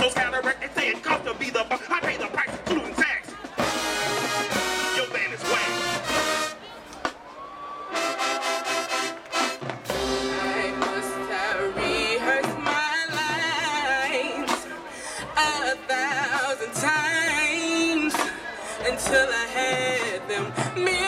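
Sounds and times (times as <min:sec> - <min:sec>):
marching band brass playing chords: 0:00.0 - 0:21.0.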